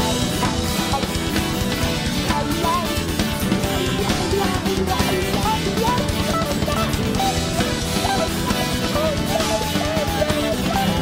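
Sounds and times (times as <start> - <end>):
drum kit beat: 0.0 - 11.0
guitar: 0.0 - 11.0
rock band playing: 0.0 - 11.0
sliding melody line: 0.0 - 11.0.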